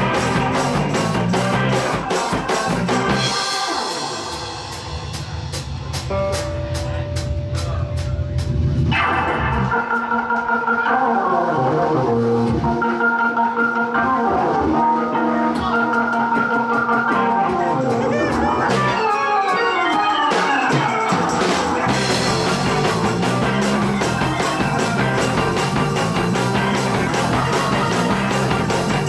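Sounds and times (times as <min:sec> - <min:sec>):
live band playing: 0:00.0 - 0:29.0
organ chords: 0:00.0 - 0:29.0.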